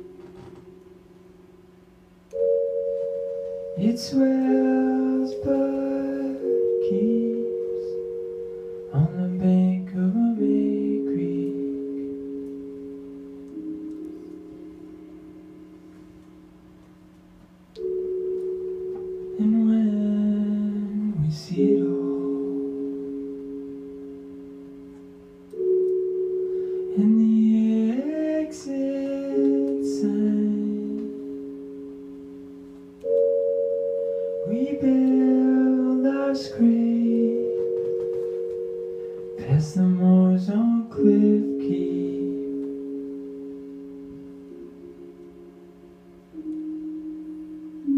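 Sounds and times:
held keyboard chords: 0.0s - 47.9s.

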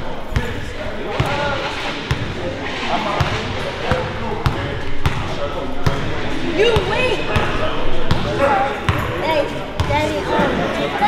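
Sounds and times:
background voices: 0.0s - 9.9s.

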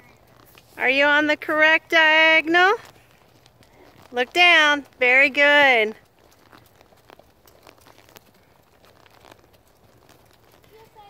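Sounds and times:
horse hoofbeats on dirt: 0.0s - 11.0s.

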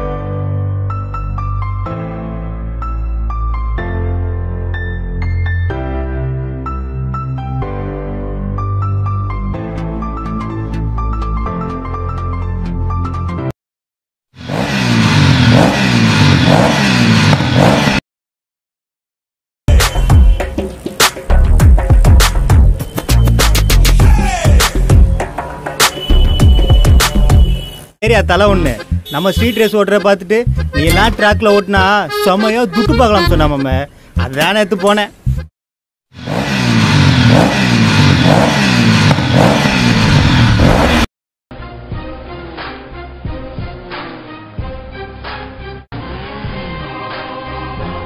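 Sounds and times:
engine revving: 14.4s - 18.0s, 36.1s - 41.1s.

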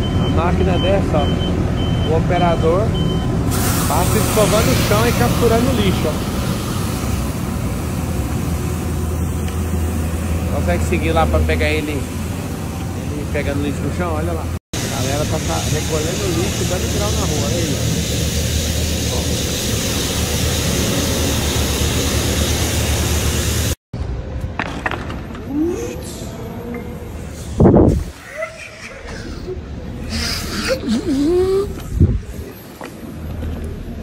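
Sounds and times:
street sweeper engine hum: 0.0s - 24.6s.

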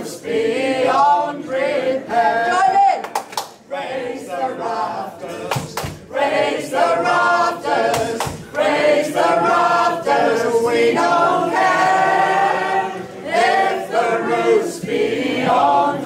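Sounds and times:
mixed choir singing unaccompanied: 0.0s - 3.0s, 3.6s - 16.0s.

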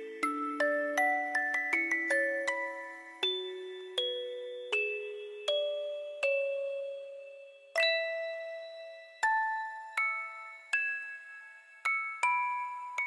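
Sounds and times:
music box melody: 0.0s - 13.0s.

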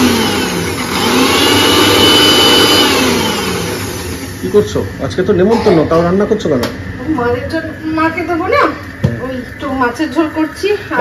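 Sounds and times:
mixer grinder motor whine: 0.0s - 5.5s.

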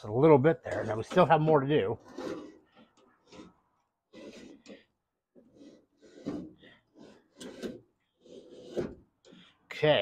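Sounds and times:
window crank glass scraping in tracks: 0.6s - 9.4s.

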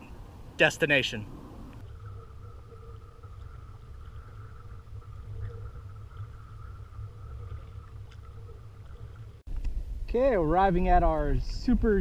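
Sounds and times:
faint steady hum: 0.0s - 11.9s
paddle and water ticks: 0.1s - 9.8s
wind and water rumble on microphone: 1.2s - 12.0s.

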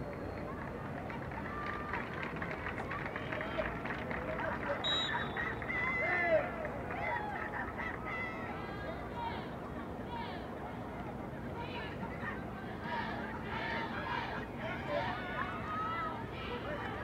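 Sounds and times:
crowd and outdoor noise: 0.0s - 17.0s.

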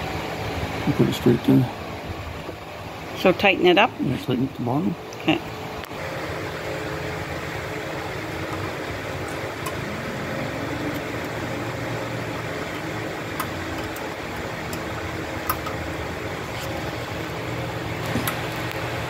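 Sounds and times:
machine droning: 0.0s - 19.0s.

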